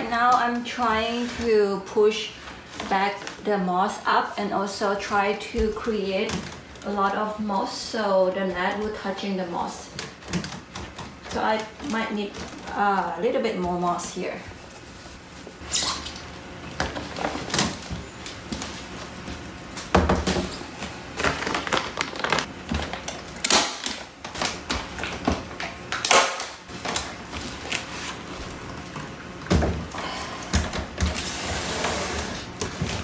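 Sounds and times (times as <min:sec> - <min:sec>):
plastic sheeting rustling: 0:13.9 - 0:16.0.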